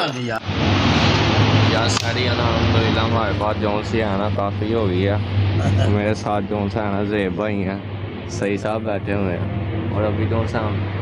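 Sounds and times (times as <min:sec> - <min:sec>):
person talking: 0:00.0 - 0:00.4, 0:05.6 - 0:06.0
steady low hum: 0:00.0 - 0:11.0.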